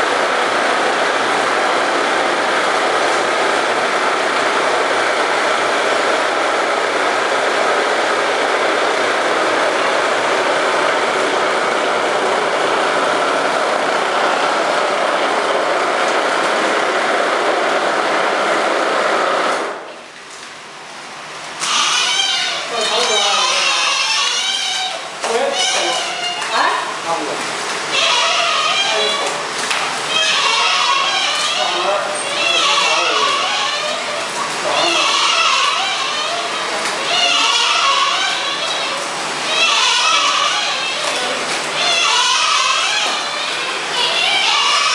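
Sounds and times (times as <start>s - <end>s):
plastering machine running: 0.0s - 44.9s
people talking: 22.6s - 24.4s, 25.2s - 29.5s, 30.1s - 42.0s.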